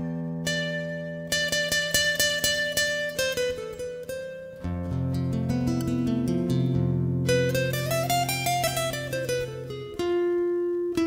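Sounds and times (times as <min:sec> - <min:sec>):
plucked guitar notes: 0:00.0 - 0:11.0.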